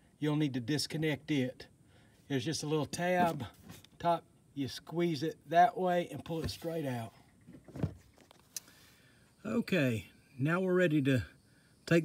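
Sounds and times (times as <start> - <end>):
faint handling noises: 6.2 - 8.8.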